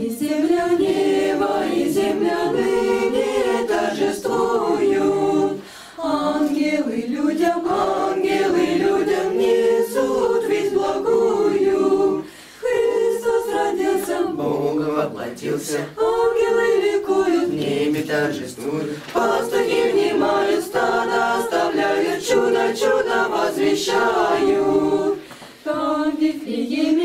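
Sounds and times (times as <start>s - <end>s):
youth choir singing a cappella: 0.0s - 27.0s.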